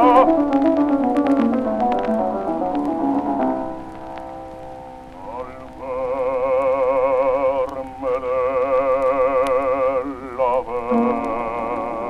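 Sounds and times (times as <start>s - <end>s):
disc surface crackle and hiss: 0.0s - 12.0s
old recording music: 0.0s - 12.0s.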